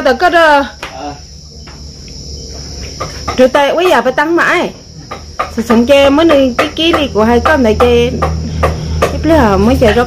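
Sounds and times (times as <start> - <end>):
crickets chirring: 0.0 - 10.0.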